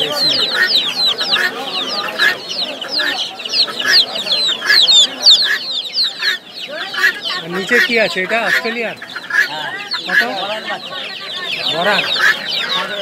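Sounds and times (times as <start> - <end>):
chicks peeping: 0.0 - 13.0.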